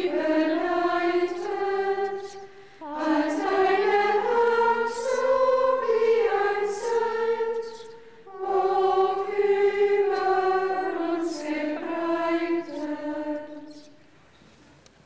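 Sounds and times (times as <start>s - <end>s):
women's choir singing a hymn: 0.0s - 14.0s.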